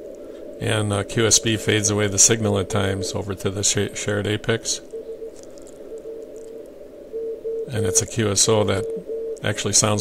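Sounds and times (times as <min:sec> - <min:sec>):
radio band noise hiss: 0:00.0 - 0:10.0
weak morse code tone: 0:00.7 - 0:10.0.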